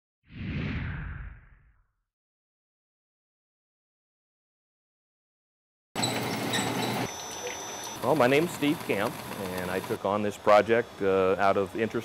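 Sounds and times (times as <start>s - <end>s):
whoosh sound effect: 0.3s - 1.8s.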